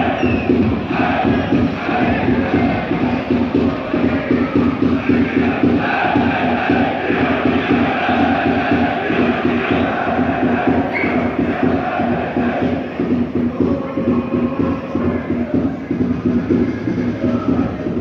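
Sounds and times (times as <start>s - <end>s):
crowd chanting: 0.0s - 18.0s
repeating drum beat: 0.0s - 18.0s.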